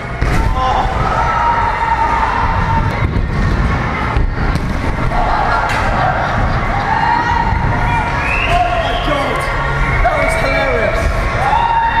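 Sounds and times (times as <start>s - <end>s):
people shouting and cheering: 0.0s - 12.0s.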